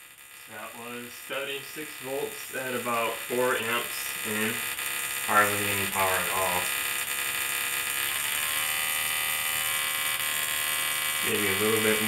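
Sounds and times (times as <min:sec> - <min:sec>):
tesla coil electrical buzz: 0:00.0 - 0:12.0.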